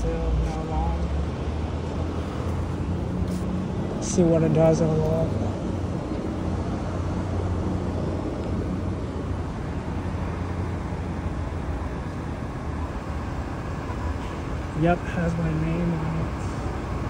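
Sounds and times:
street traffic rumble: 0:00.0 - 0:17.0.

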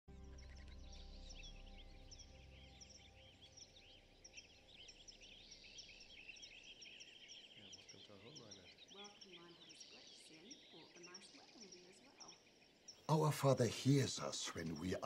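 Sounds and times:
low musical drone: 0:00.1 - 0:06.8
small birds chirping: 0:00.1 - 0:15.0.

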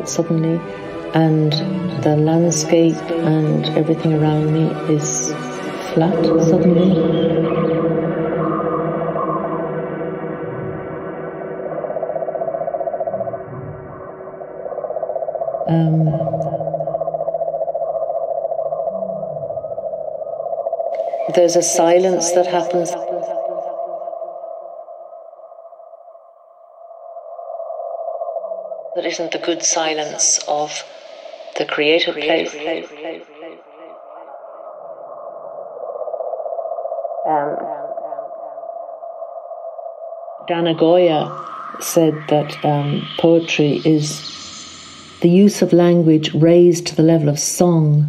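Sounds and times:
low synthesizer tone: 0:00.0 - 0:18.0, 0:18.7 - 0:20.4, 0:40.4 - 0:48.0
fluttering synthesizer drone: 0:00.0 - 0:25.6, 0:27.5 - 0:48.0.

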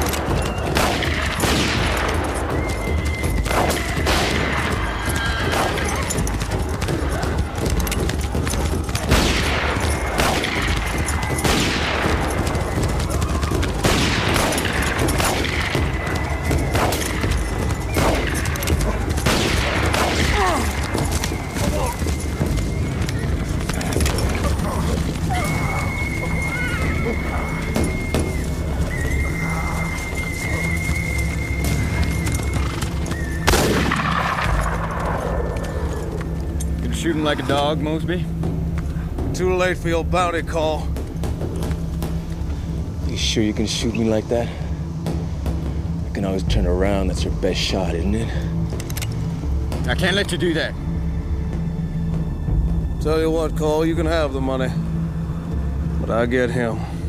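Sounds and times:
galloping horses: 0:00.0 - 0:53.2
horse whinnies: 0:04.6 - 0:06.3, 0:24.1 - 0:33.4
gunshots with echo: 0:09.0 - 0:12.6.

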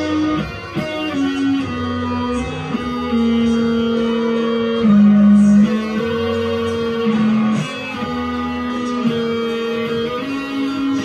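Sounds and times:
electric guitar playing held notes: 0:00.0 - 0:11.0
steady low bass line: 0:00.0 - 0:11.0.

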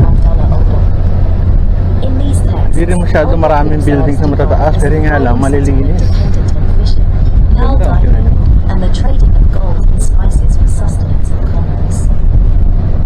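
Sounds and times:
faint voices talking: 0:00.0 - 0:12.2
boat engine droning: 0:00.0 - 0:13.0.

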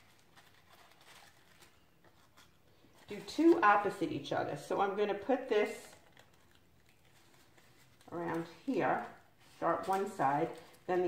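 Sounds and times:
paper crinkling and ticking: 0:00.0 - 0:04.3, 0:05.2 - 0:11.0.

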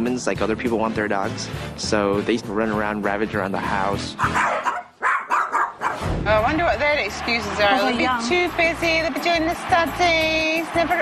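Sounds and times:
small dogs barking: 0:04.2 - 0:06.0.

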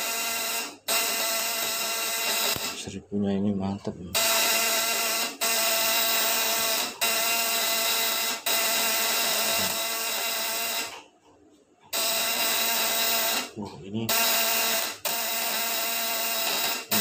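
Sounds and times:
inverter contacts buzzing loudly: 0:00.0 - 0:02.9, 0:04.1 - 0:11.0, 0:11.9 - 0:17.0.

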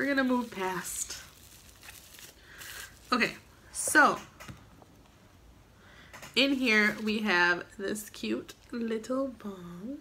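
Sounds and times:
packaging rustling: 0:00.0 - 0:03.5.

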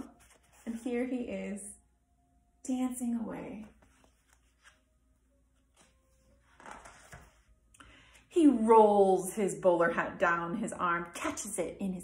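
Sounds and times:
book page turning: 0:00.0 - 0:01.1, 0:03.6 - 0:07.6.

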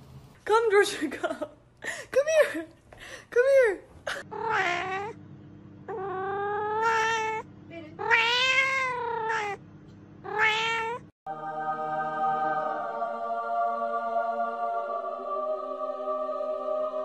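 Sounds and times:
cat meowing: 0:04.2 - 0:05.2, 0:05.9 - 0:09.6, 0:10.2 - 0:11.1.

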